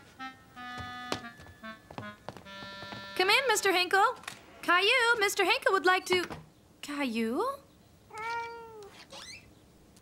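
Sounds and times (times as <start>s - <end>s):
cat meowing: 8.1s - 9.3s.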